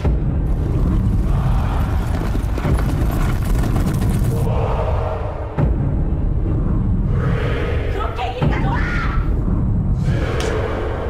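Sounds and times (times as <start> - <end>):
horses galloping on dirt: 0.5 - 4.5.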